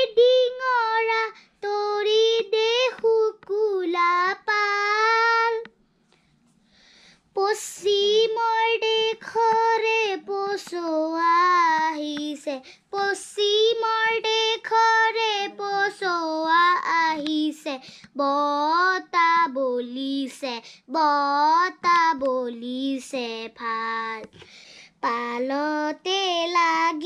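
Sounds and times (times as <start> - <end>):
boy singing unaccompanied: 0.0 - 5.7, 7.3 - 24.4, 25.0 - 27.0.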